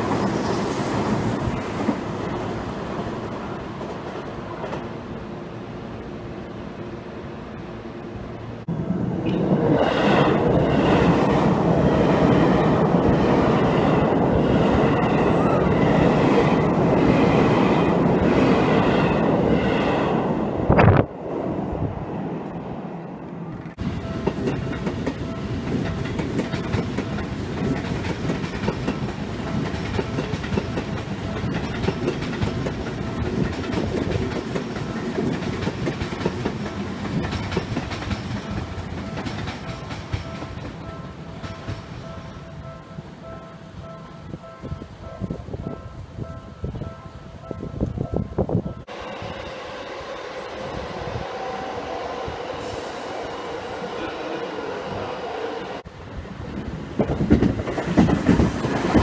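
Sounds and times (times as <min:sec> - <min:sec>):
train rumble and hum: 0:00.0 - 0:59.0
train wheels clattering over rails: 0:23.7 - 0:42.0, 0:56.6 - 0:59.0.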